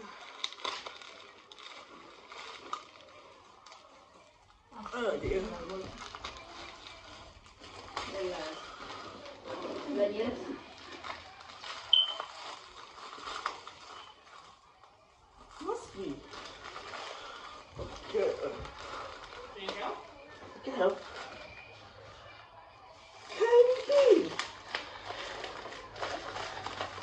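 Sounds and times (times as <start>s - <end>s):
plastic envelope crinkling and tearing: 0.0s - 22.0s, 22.9s - 27.0s
plastic mailer bag rustling: 4.8s - 22.1s, 23.0s - 27.0s.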